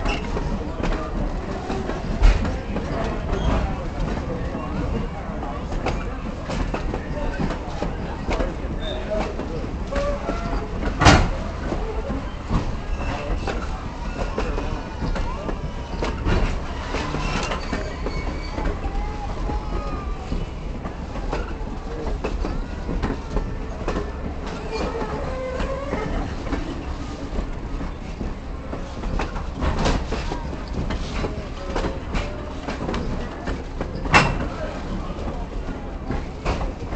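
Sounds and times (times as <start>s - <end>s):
train rumbling: 0.0s - 36.9s
train wheels clicking: 0.0s - 36.9s.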